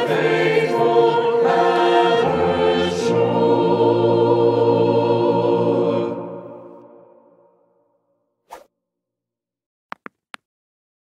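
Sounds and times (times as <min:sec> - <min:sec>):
choir singing a chord: 0:00.0 - 0:07.8.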